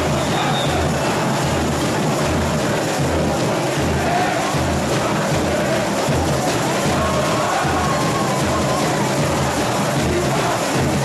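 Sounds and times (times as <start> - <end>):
bass drum beat: 0.0 - 11.0
crowd noise: 0.0 - 11.0.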